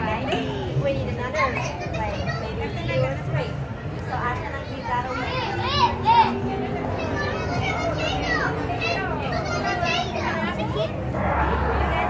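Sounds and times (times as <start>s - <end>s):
children calling and chattering: 0.0s - 12.0s
crowd noise: 0.0s - 12.0s
rushing noise with low rumble: 5.6s - 12.0s.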